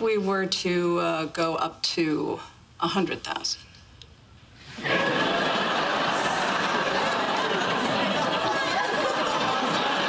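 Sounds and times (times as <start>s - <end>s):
studio audience laughing: 4.7s - 10.0s.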